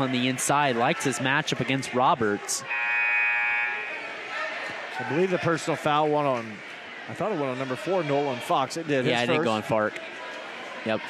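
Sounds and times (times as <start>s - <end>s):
scoreboard buzzer: 2.7s - 4.0s
crowd murmuring: 3.7s - 11.0s.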